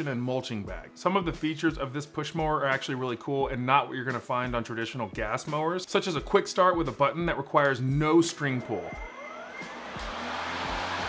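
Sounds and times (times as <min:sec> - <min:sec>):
electric lawn mower whine: 0:09.0 - 0:11.0.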